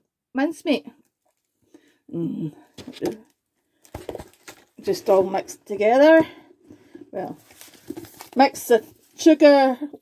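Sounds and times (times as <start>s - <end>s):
woman speaking: 0.4s - 1.0s, 2.1s - 3.2s, 4.8s - 6.4s, 7.1s - 7.5s, 8.4s - 10.0s.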